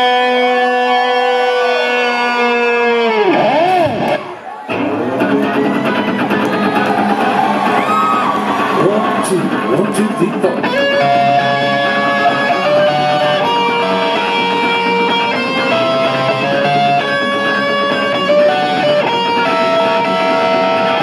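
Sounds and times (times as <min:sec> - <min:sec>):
bass guitar line: 0:00.0 - 0:21.0
electric guitars playing melody: 0:00.0 - 0:21.0.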